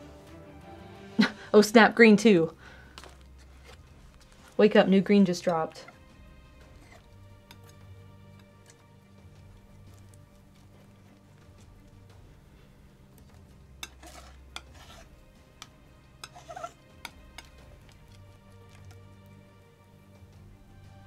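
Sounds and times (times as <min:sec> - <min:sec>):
tool scraping paint on palette: 0:13.8 - 0:17.6.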